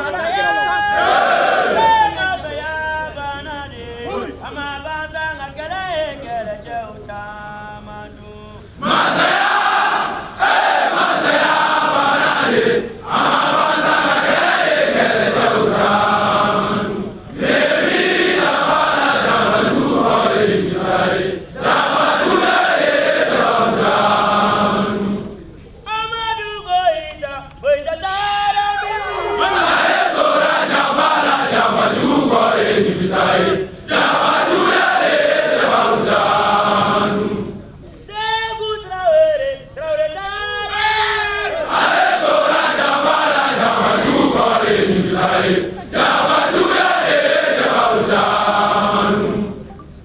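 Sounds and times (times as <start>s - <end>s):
group of voices chanting: 8.8s - 25.3s, 29.2s - 37.6s, 41.4s - 49.5s.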